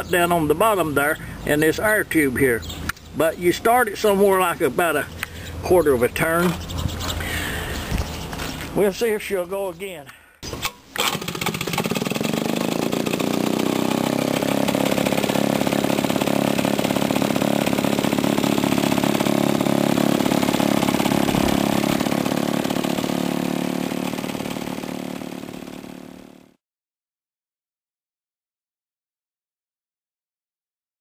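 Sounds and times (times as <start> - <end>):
two-stroke engine running: 11.0 - 26.6.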